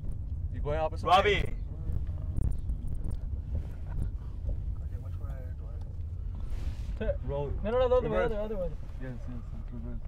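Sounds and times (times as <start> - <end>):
wind buffeting microphone: 0.0 - 7.6
car rumble from inside cabin: 0.0 - 10.0.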